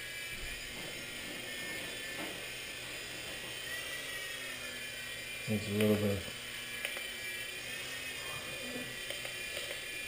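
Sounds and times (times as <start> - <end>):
rc helicopter high-pitched whine: 0.0 - 10.0.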